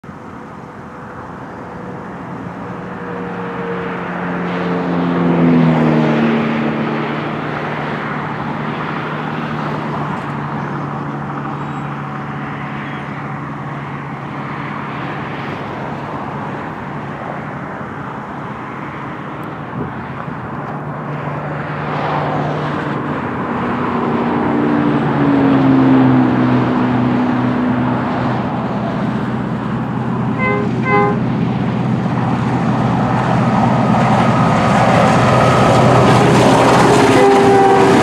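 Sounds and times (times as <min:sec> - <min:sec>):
low hum and road noise: 0:00.0 - 0:38.0
vehicle engine passing: 0:00.0 - 0:38.0.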